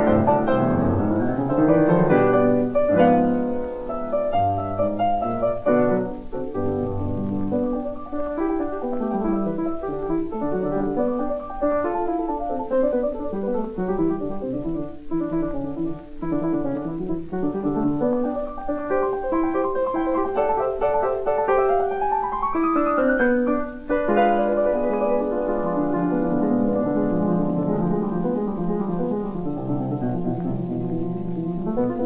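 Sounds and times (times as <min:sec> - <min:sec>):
solo piano: 0:00.0 - 0:32.0.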